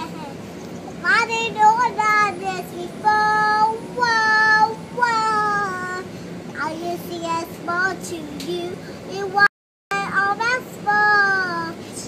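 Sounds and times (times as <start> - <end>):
girl singing in a high voice: 1.0 - 12.0.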